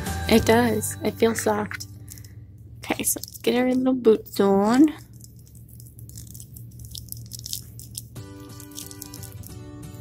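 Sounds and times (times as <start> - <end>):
soft background music: 0.0 - 5.0, 7.4 - 10.0.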